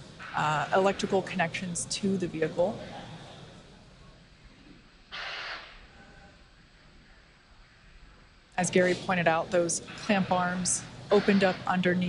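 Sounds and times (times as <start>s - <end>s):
short breathy hiss: 5.1s - 6.2s.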